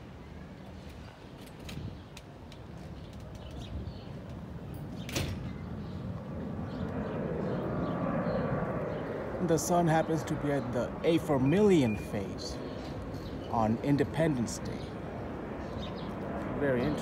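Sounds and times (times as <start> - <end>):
low outdoor rumble: 0.0 - 17.0.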